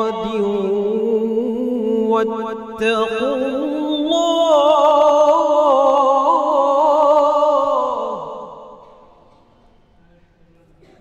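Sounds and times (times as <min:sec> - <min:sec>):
man reciting melodically: 0:00.0 - 0:09.0.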